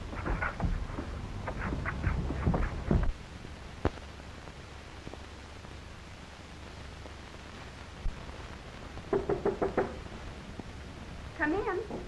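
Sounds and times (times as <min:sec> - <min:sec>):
knocks on wooden door: 0:01.7 - 0:03.1, 0:09.1 - 0:10.0.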